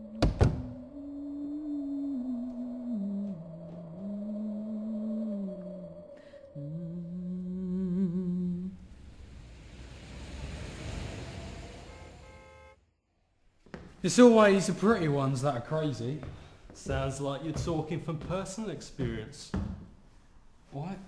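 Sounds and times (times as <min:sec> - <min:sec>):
person humming a slow tune: 0:00.0 - 0:09.0
rush of low rumbling noise: 0:01.1 - 0:12.2.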